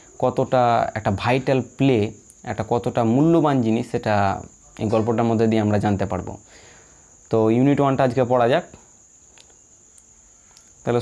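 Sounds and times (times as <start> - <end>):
faint high-pitched whine: 0.0 - 11.0
man speaking: 0.1 - 6.4, 7.3 - 8.8.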